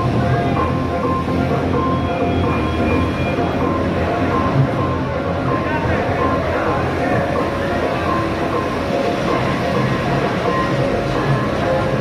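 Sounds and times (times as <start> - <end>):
bumper cars rumbling: 0.0 - 12.0.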